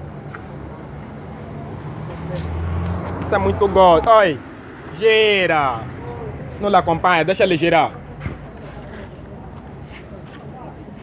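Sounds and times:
low street background: 0.0 - 11.0
faint indistinct voices: 5.5 - 11.0.

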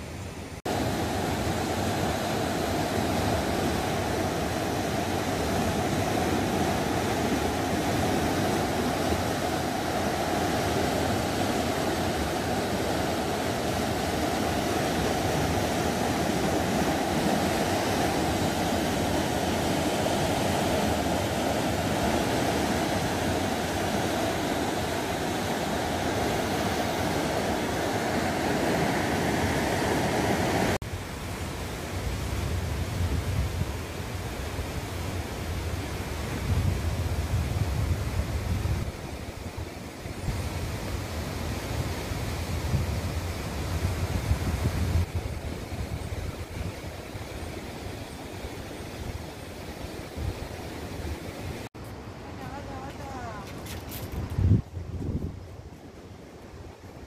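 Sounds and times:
river rushing: 0.0 - 57.0.

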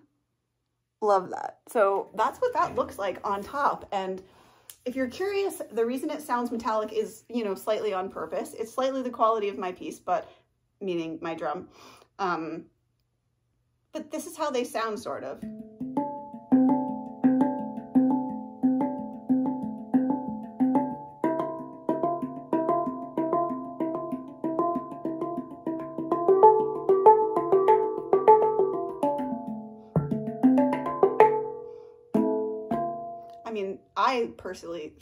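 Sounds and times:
handpan notes ringing: 15.4 - 33.4.

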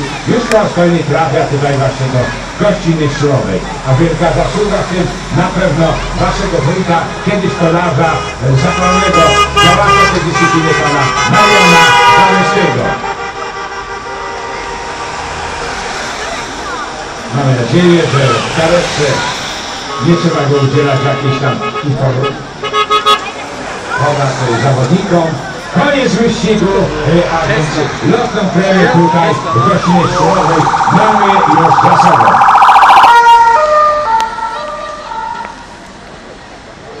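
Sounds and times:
car passing on wet road: 0.0 - 22.7, 23.3 - 36.8
faint voices: 15.8 - 32.7
police car siren passing: 28.4 - 35.8.

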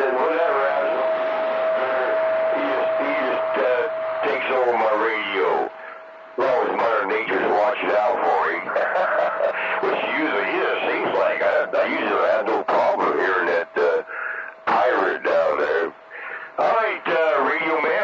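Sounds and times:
garbled radio voices: 0.0 - 18.0
steady radio whistle: 0.0 - 18.0.

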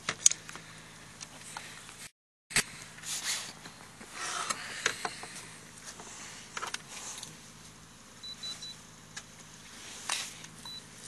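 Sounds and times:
rustling and scraping: 9.6 - 10.6.

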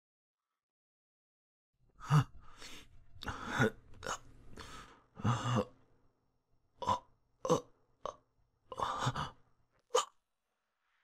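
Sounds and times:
man groaning and gasping in pain: 5.2 - 5.8, 6.8 - 10.2.

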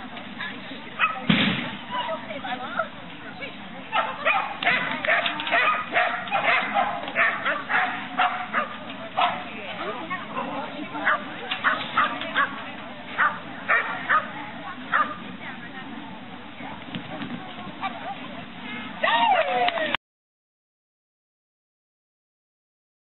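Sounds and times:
dog barking: 1.0 - 1.2, 3.9 - 9.4, 11.0 - 12.6, 13.2 - 14.3, 14.9 - 15.2.

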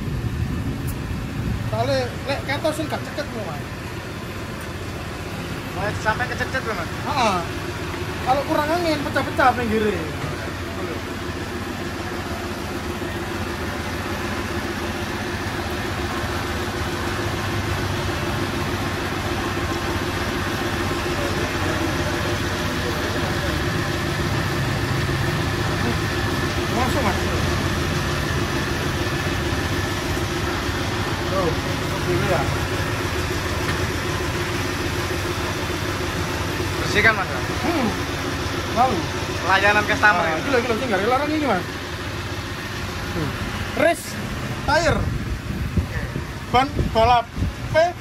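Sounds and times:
workshop machinery motor drone: 0.0 - 48.0.

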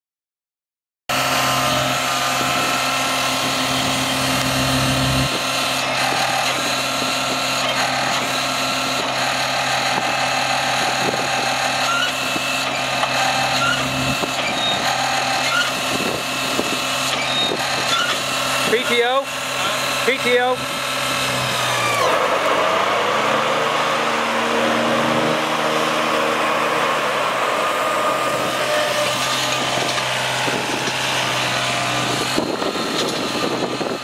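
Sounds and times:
diesel engine running: 1.1 - 34.0.

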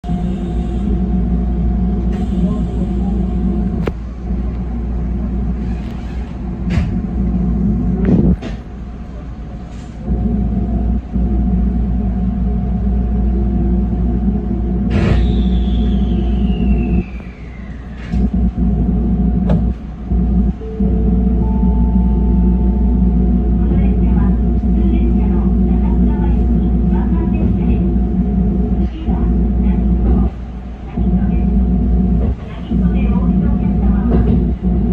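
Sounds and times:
train equipment humming: 0.0 - 34.9
whistle-like falling tone: 15.2 - 18.2.

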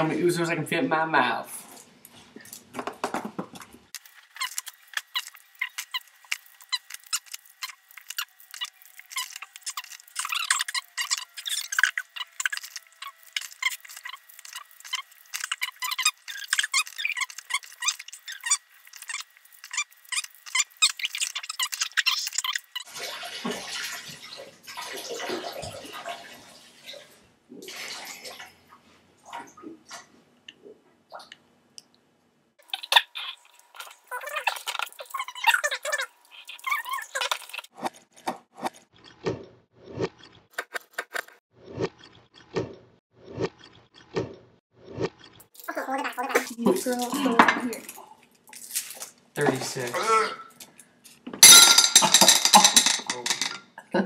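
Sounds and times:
splashing water: 4.0 - 28.6
candy wrappers crinkling: 48.3 - 49.2.

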